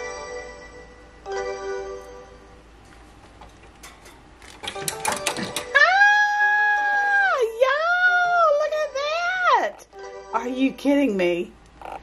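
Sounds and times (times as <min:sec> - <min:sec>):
woman squealing excitedly: 0:05.7 - 0:08.2.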